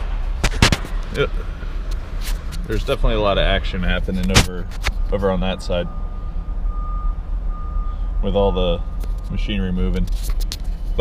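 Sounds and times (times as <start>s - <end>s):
vehicle idling rumble: 0.0s - 11.0s.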